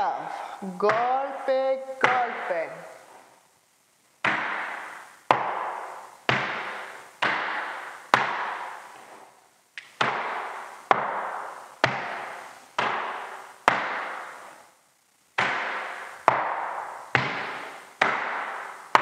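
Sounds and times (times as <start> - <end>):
shoes stamping on wooden floor: 4.2 - 14.4, 15.4 - 19.0.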